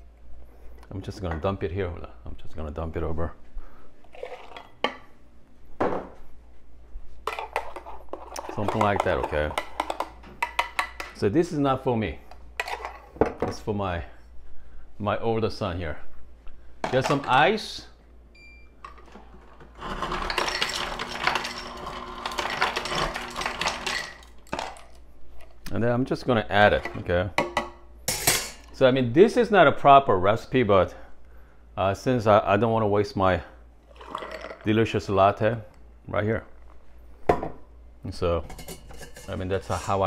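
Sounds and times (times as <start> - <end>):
ice cubes clattering into glass: 19.8 - 25.0
kitchenware clinking and knocking: 26.8 - 28.7, 38.4 - 40.0
milk being poured: 33.9 - 34.7.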